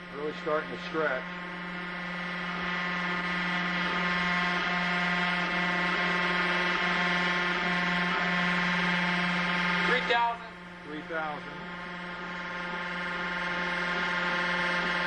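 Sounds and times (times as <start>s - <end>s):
test machine electric buzzing hum: 0.0s - 15.0s.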